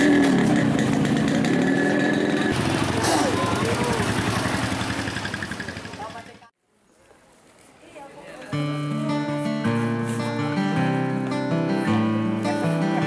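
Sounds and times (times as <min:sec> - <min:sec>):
vehicle engine running: 0:00.0 - 0:06.5
people's voices: 0:02.9 - 0:04.3.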